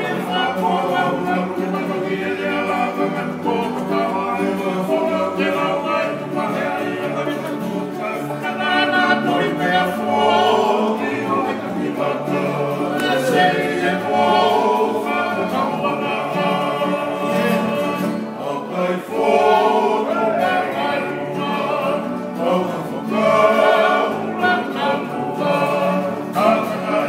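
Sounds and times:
men singing in harmony: 0:00.0 - 0:27.0
strummed acoustic guitars: 0:00.0 - 0:27.0.

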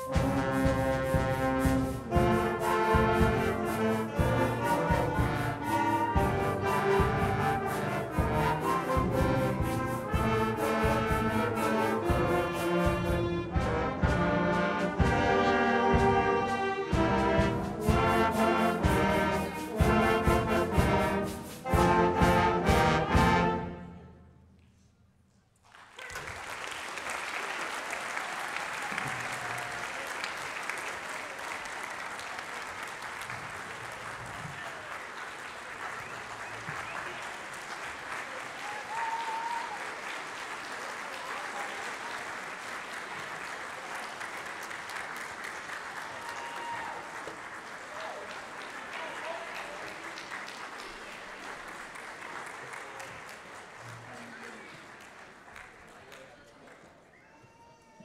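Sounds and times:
audience applauding in a hall: 0:00.0 - 0:23.2, 0:25.5 - 0:58.0.

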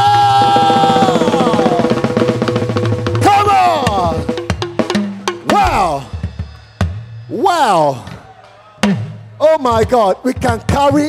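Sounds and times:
man shouting into microphone: 0:00.0 - 0:02.1, 0:03.2 - 0:04.3, 0:05.4 - 0:06.2, 0:07.3 - 0:08.3
fast drum roll: 0:00.0 - 0:07.1.

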